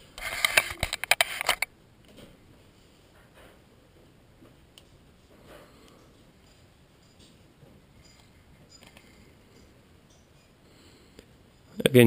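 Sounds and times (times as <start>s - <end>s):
handling clicks and rustles: 0.1s - 2.4s.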